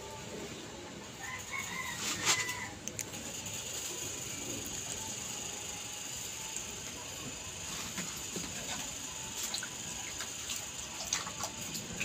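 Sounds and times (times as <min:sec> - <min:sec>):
rooster crowing: 0:01.2 - 0:02.8.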